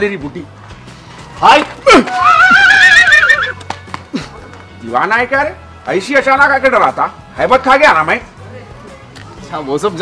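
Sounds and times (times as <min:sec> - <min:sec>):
man shrieking: 0:01.9 - 0:03.5.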